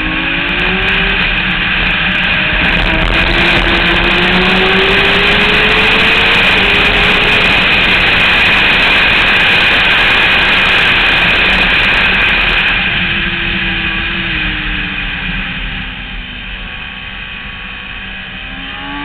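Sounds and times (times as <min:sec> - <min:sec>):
motorcycle engine at high revs: 0:00.0 - 0:19.0
wind noise: 0:00.0 - 0:19.0.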